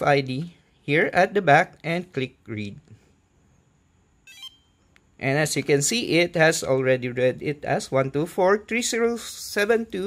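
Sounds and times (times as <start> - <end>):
electronic beep chirp: 4.2 - 4.9.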